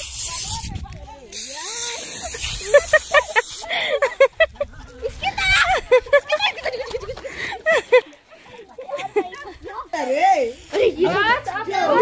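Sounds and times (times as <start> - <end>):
aerosol can spraying: 0.0 - 3.7.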